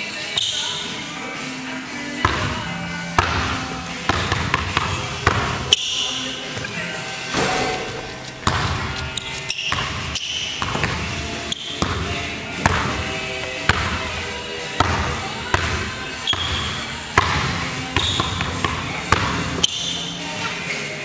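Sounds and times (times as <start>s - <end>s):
background music: 0.0s - 21.0s
basketball bouncing on hardwood: 3.2s - 5.7s, 8.4s - 9.1s, 9.7s - 11.1s, 11.8s - 13.0s, 13.7s - 14.0s, 14.8s - 19.5s.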